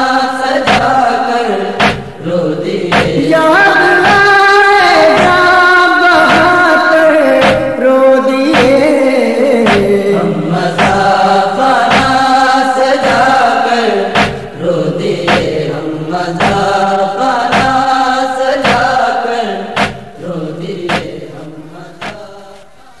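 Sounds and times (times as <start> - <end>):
person chanting a lament: 0.0 - 23.0
steady thump: 0.7 - 0.9, 1.8 - 2.2, 2.9 - 3.2, 11.9 - 12.2, 14.2 - 14.5, 15.3 - 15.6, 16.4 - 16.7, 17.5 - 17.8, 18.6 - 18.9, 19.8 - 20.1, 20.9 - 21.2, 22.0 - 22.2.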